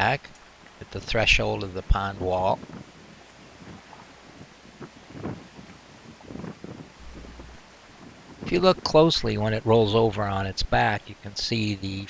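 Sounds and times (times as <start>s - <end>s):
wind buffeting microphone: 1.7s - 9.7s.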